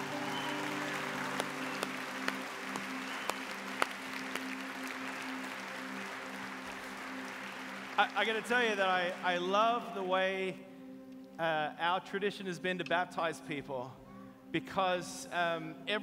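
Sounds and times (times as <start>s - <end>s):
congregation applauding: 0.0s - 10.1s.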